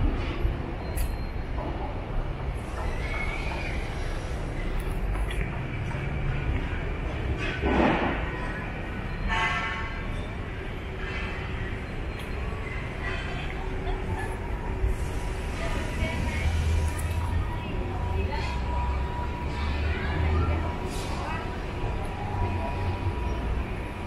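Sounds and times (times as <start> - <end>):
distant city traffic rumble: 0.0 - 24.0.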